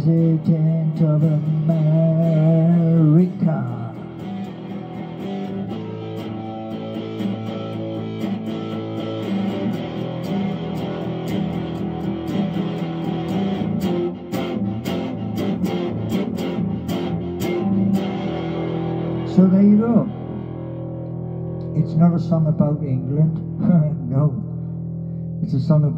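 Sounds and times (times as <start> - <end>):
electric guitar through amplifier: 0.0 - 25.9.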